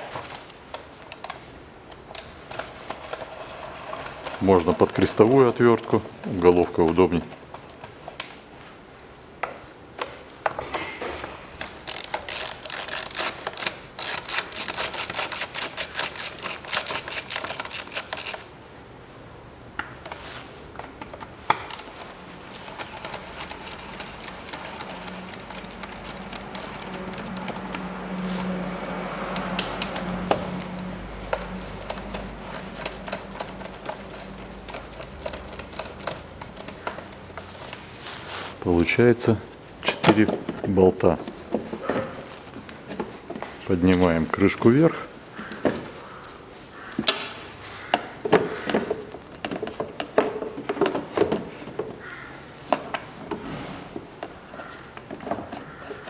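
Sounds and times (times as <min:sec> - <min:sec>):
socket ratchet clicking: 0:11.8 - 0:18.5.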